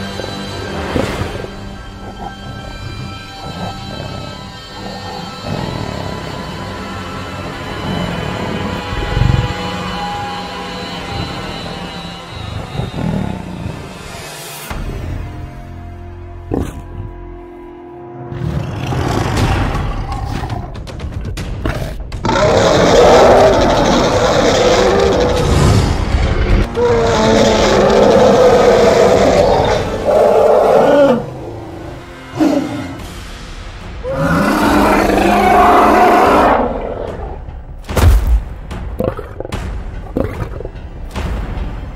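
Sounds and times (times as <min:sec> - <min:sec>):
lion snarling and roaring: 0:00.8 - 0:09.7, 0:11.0 - 0:14.2, 0:16.4 - 0:17.2, 0:18.3 - 0:33.1, 0:34.0 - 0:37.7.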